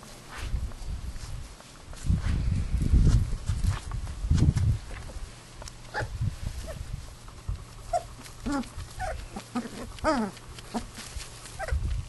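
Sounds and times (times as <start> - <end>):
puppies whimpering and yelping: 5.9 - 6.8, 7.7 - 11.8.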